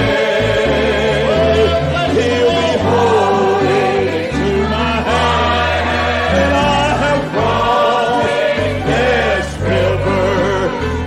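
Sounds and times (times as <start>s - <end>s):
gospel singing: 0.0s - 11.0s
sustained low instrumental chords: 0.0s - 11.0s.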